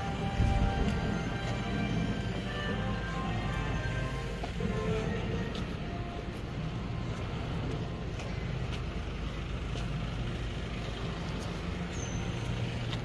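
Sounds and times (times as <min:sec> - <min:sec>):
large vehicle engine idling: 0:00.0 - 0:13.0.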